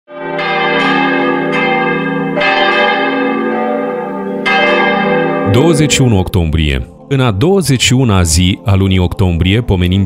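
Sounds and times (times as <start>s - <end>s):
church bells ringing: 0.1s - 8.4s.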